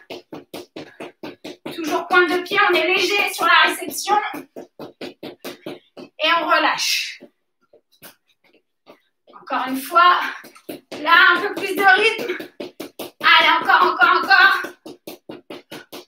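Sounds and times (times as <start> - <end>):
woman speaking: 1.7 - 4.5, 6.2 - 7.3, 9.4 - 12.4, 13.2 - 14.8
quick light sharp taps: 3.8 - 6.2.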